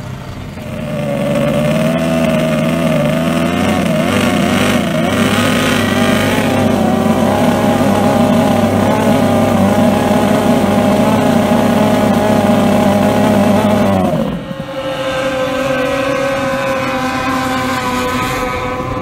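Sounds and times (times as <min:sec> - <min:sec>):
propeller spray: 0:00.0 - 0:19.0
racing outboard engine: 0:00.0 - 0:19.0.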